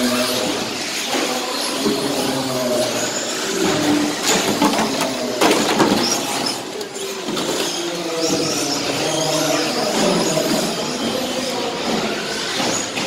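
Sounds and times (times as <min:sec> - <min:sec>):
rc car motors whining: 0:00.0 - 0:13.0.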